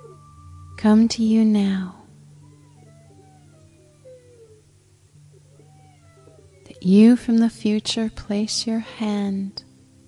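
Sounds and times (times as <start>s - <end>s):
low meditation drone: 0.0s - 10.0s.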